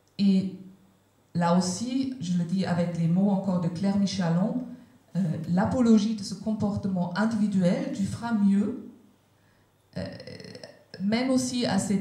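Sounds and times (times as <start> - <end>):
woman saying euh into microphone: 1.4 - 9.0, 10.0 - 12.0.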